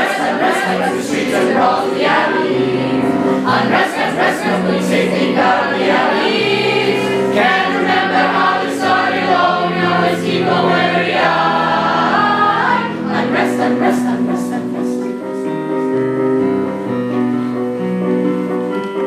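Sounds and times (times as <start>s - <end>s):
young voices singing in chorus: 0.0s - 15.1s
electric keyboard piano: 0.0s - 19.0s.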